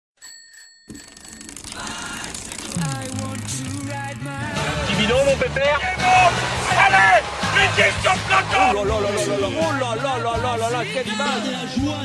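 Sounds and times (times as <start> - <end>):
small bell ringing: 0.2 - 1.6
sliding bass note: 2.6 - 5.5.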